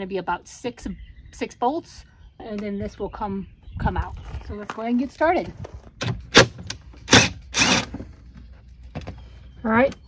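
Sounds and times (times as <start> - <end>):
impact driver running: 7.1 - 7.9.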